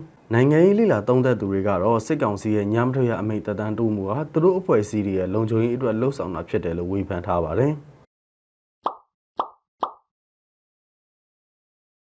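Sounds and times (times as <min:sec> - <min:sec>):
pop sound effects: 0:08.8 - 0:10.1.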